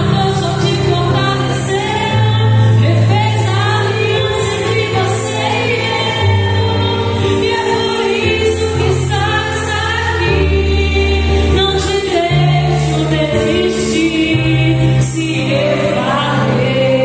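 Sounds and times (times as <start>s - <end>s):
woman singing into microphone: 0.0s - 17.0s.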